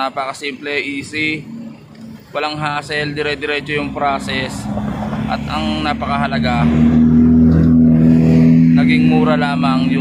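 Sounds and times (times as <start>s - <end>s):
vehicle engine idling: 0.0s - 6.6s.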